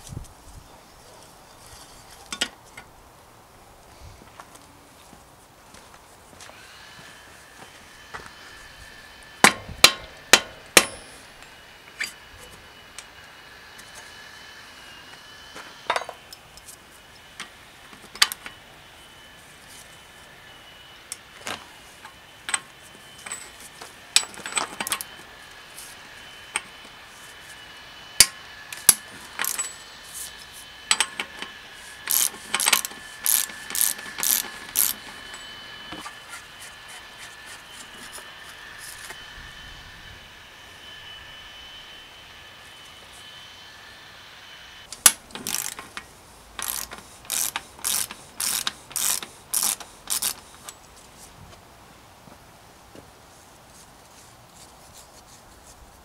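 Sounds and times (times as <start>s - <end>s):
ratcheting tool clicks: 28.8s - 29.7s, 32.1s - 35.0s, 44.9s - 50.8s.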